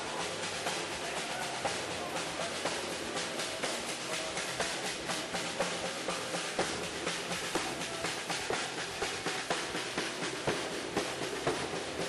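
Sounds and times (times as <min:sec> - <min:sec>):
drums played in fast strokes: 0:00.0 - 0:12.0.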